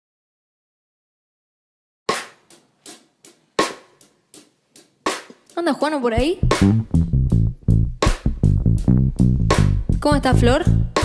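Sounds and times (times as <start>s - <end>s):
drum kit slow beat: 2.1s - 5.6s, 6.2s - 11.0s.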